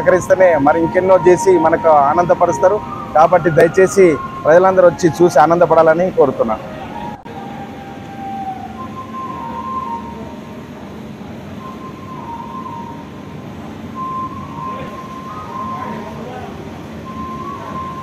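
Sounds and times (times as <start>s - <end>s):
high whistle-like tone: 0.0s - 18.0s.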